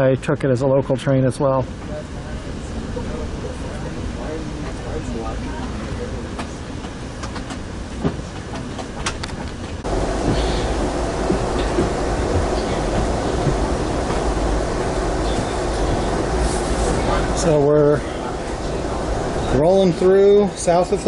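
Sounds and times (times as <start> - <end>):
train wheels rumbling on rails: 2.6 - 21.0.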